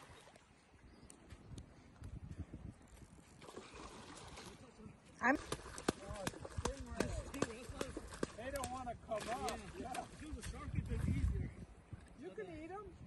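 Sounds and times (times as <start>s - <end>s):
people talking: 6.0s - 11.6s.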